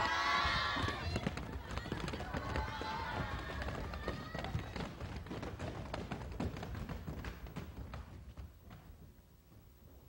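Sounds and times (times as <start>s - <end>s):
people shouting: 0.0s - 4.6s
feet running on wooden stage: 0.0s - 10.0s.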